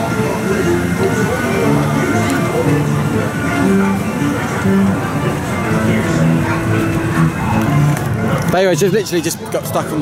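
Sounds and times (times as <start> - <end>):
guitar melody: 0.0 - 10.0.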